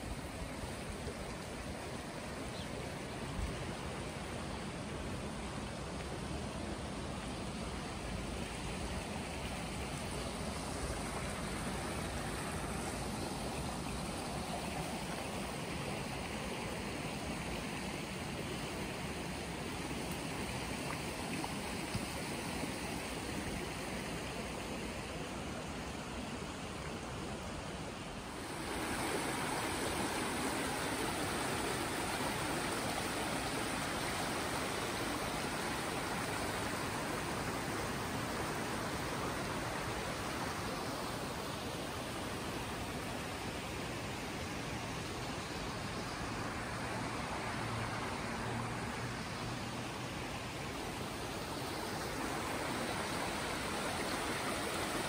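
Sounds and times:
creek running over stones: 0.0s - 55.0s.

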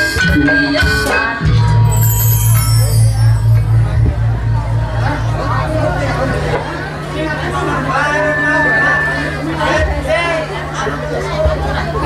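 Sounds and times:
people talking over one another: 0.0s - 12.0s
low music beat: 1.4s - 6.9s
steady low hum: 2.8s - 10.0s.

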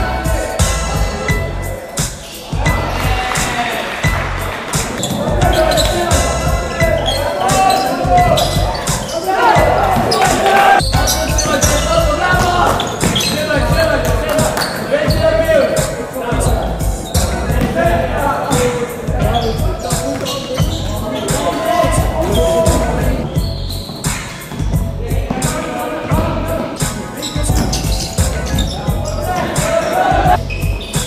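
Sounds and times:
hip-hop beat: 0.0s - 31.0s
heavy kick drum: 10.8s - 12.7s, 13.6s - 14.3s, 16.3s - 18.2s, 19.1s - 19.8s, 24.6s - 26.6s.

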